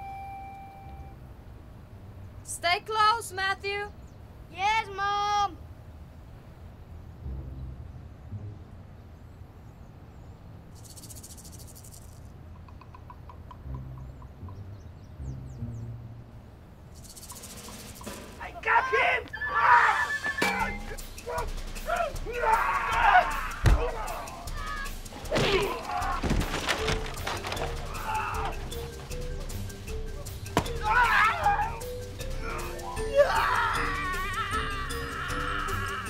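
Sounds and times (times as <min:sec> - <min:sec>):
dramatic film music: 0:20.4 - 0:36.0.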